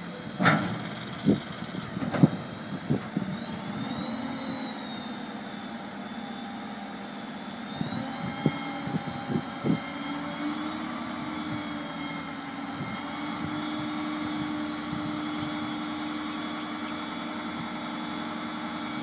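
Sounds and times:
hydraulic pump whining: 0.0 - 19.0
truck engine running: 0.0 - 19.0.

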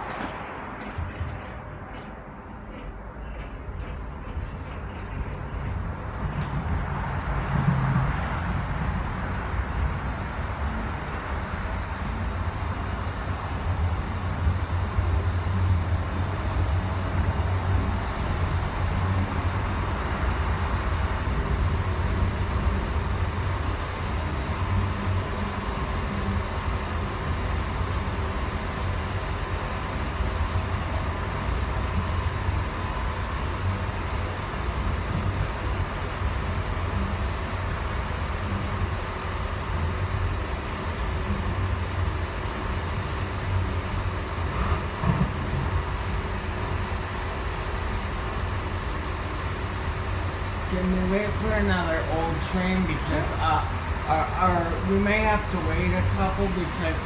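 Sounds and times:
faint steady whine: 0.0 - 57.0
light rail car rumbling: 0.0 - 57.0.

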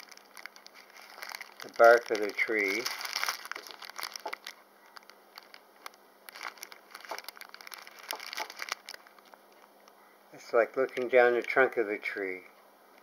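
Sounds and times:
plastic bag crinkling: 0.0 - 9.6, 10.6 - 11.7.

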